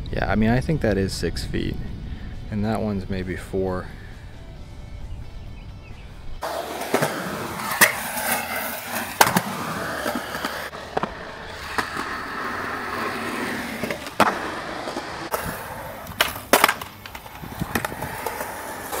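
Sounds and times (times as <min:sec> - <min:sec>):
skateboard wheels rolling on concrete: 0:06.3 - 0:19.0
skateboard clacking on ground: 0:06.4 - 0:19.0.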